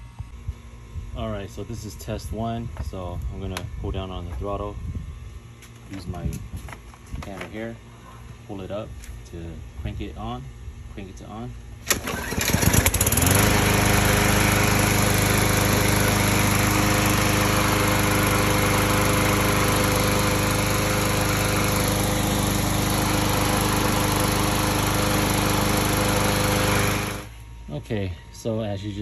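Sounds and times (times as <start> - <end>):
lawn mower engine running: 11.8 - 27.4.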